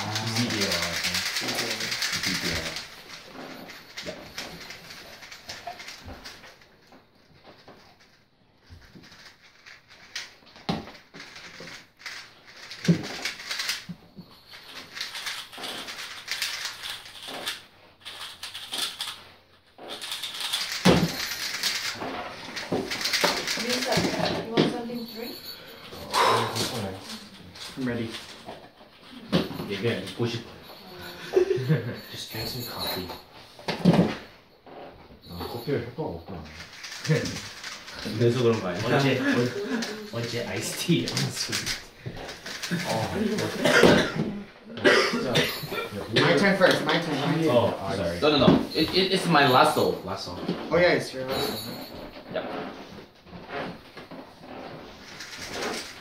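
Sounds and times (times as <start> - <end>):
puzzle cubes clicking: 0.0 - 6.7, 8.8 - 19.2, 19.9 - 24.4, 36.5 - 43.6
voices in room: 0.0 - 8.1, 8.8 - 56.0.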